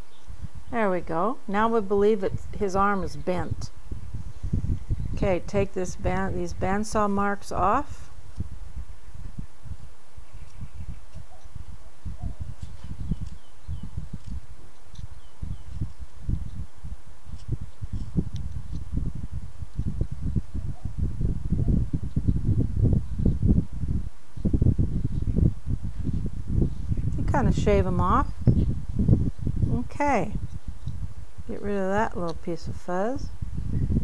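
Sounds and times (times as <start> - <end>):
knife scraping wood: 17.2 - 18.9.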